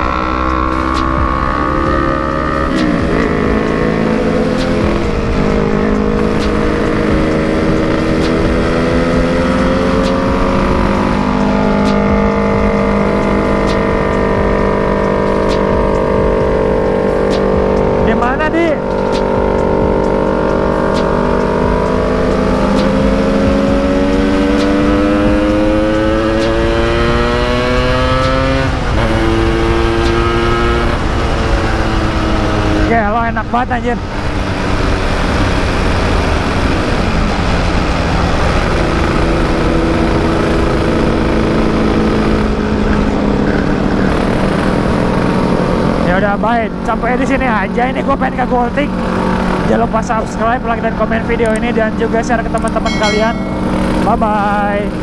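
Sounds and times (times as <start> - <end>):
passing engine swooping: 0.0 - 55.0
two-stroke motorcycle engine: 0.0 - 55.0.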